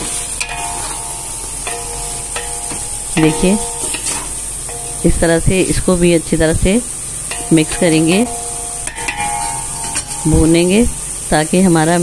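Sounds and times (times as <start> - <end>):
spatula scraping a metal pot: 0.0 - 5.0, 7.3 - 10.5
meat and tomatoes sizzling in oil: 0.0 - 12.0.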